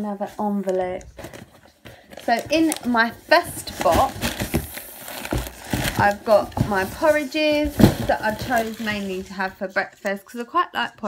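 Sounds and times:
packaging rustling: 0.4s - 9.5s.

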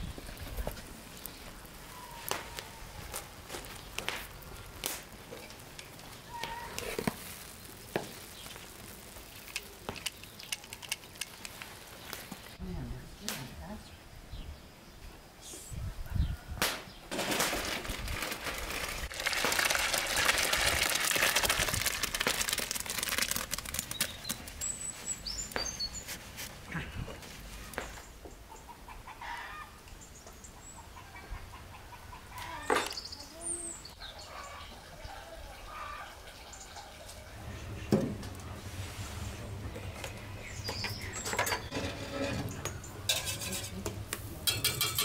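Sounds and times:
small birds chirping: 0.0s - 12.8s, 23.8s - 29.2s, 29.9s - 38.6s, 39.3s - 41.8s
jam pouring into metal basin: 17.1s - 24.0s
chickens clucking: 28.5s - 29.7s, 30.6s - 45.0s.

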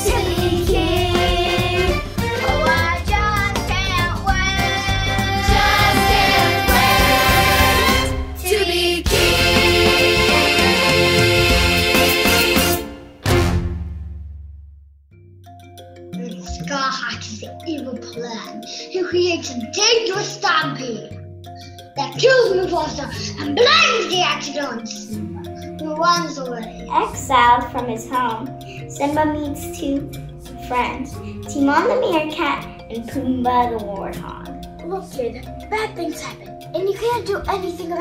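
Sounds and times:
child singing: 0.0s - 7.8s, 8.4s - 10.6s, 22.1s - 35.1s
children singing: 0.0s - 13.0s
backing track with steady beat: 0.0s - 13.9s
instrumental backing track: 0.0s - 14.0s, 15.1s - 38.0s.

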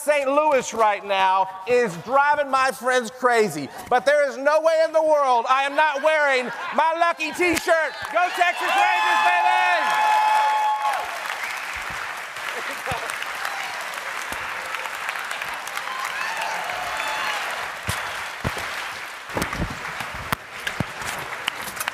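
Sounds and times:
audience applauding: 7.8s - 21.9s.

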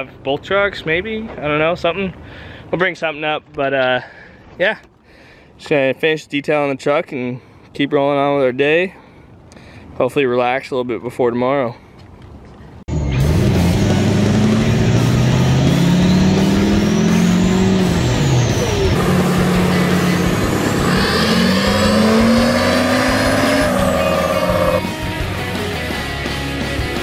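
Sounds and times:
diesel engine at full throttle: 12.9s - 25.2s
turbo whistle: 16.1s - 25.0s.

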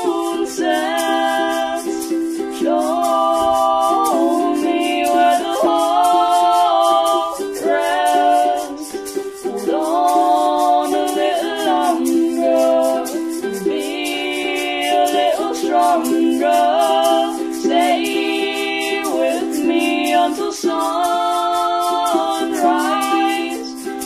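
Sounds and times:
person singing long notes: 0.0s - 23.9s
fast high ticking beat: 0.6s - 24.0s.

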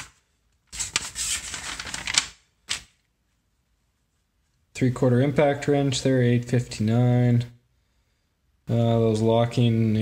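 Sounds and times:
page flapping: 0.0s - 3.0s
paper pages rustling: 0.0s - 3.0s.

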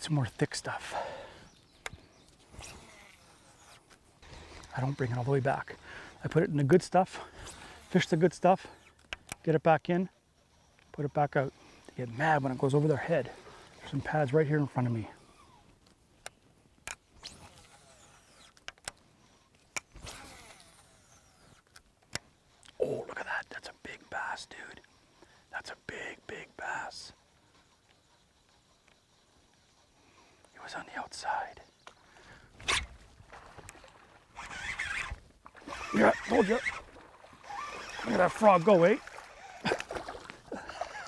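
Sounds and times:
casting reel whirring: 2.5s - 6.3s, 7.2s - 9.1s, 10.4s - 15.7s, 17.2s - 21.8s, 27.4s - 30.4s, 34.3s - 41.0s
sharp reel clicks: 11.8s - 22.8s, 34.4s - 40.0s.

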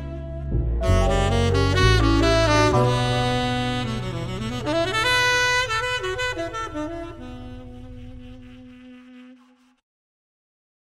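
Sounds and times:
low bass rumble: 0.0s - 8.4s
held saxophone note: 0.8s - 9.8s.

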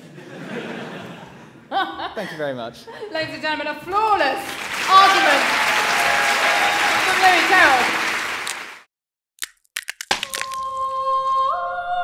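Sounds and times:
audience applause: 4.2s - 8.9s
glass light bulb cracking: 9.4s - 10.9s.

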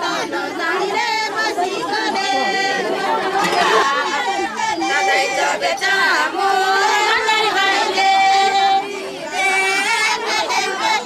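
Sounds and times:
crowd chatter: 0.0s - 11.0s
women's voices singing together: 0.0s - 11.0s.

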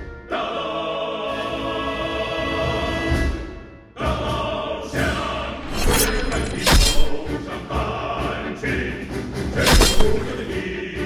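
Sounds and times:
choir singing with orchestra: 0.0s - 11.0s.

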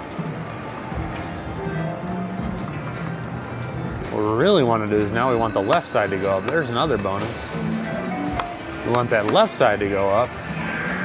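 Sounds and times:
slot machine game music: 0.2s - 10.9s
slot machine reel-spin sounds: 0.3s - 8.8s.

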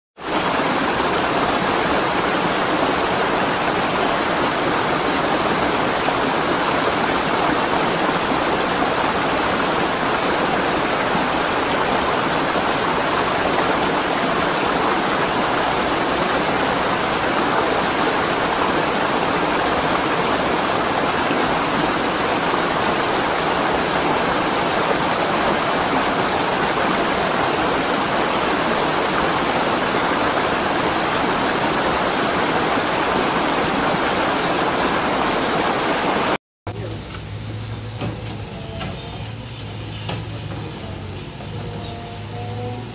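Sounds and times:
mudflow rushing: 0.2s - 41.8s.

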